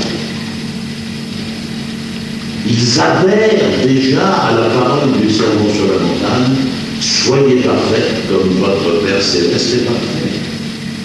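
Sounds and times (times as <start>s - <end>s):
low hum: 0.0s - 11.0s
tape hiss: 0.0s - 11.0s.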